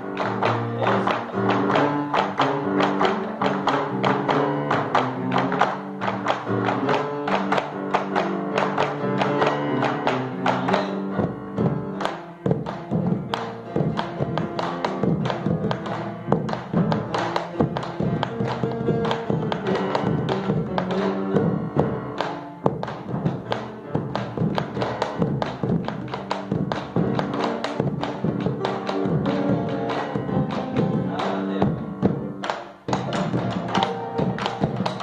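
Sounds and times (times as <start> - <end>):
folk music: 0.0 - 35.0.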